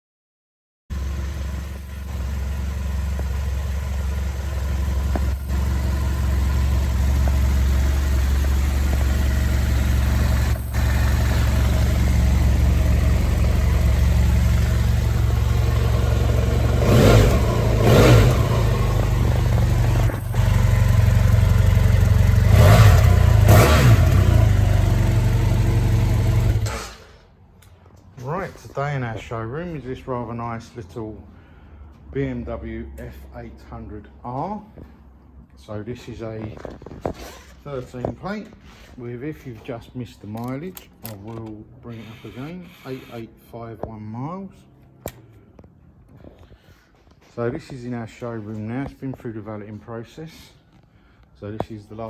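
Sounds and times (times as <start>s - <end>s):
motorcycle engine idling: 0.9s - 26.7s.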